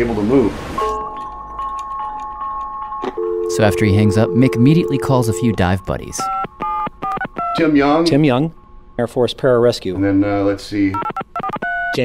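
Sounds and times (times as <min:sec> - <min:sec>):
chime-like electronic tones: 0:00.8 - 0:06.3.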